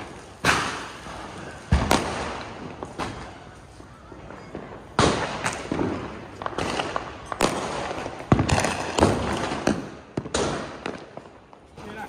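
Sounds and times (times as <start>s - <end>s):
firecrackers bangs and pops: 0.0s - 12.0s.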